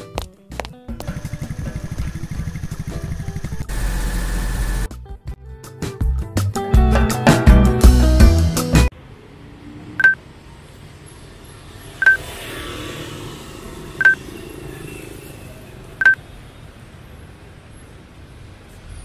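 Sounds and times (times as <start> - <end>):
street traffic noise: 0.0 - 4.9, 8.8 - 19.0
high electronic beeps: 12.0 - 12.2, 14.0 - 14.2, 16.0 - 16.2.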